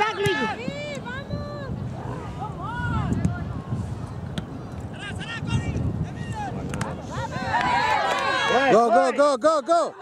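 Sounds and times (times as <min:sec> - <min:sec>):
wind rumble on microphone: 0:00.0 - 0:08.6
voices shouting: 0:05.1 - 0:10.0.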